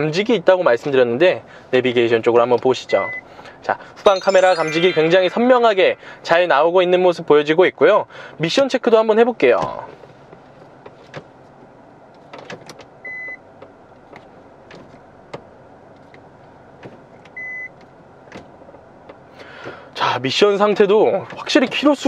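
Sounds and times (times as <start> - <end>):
short high electronic beeps: 4.0 - 6.5.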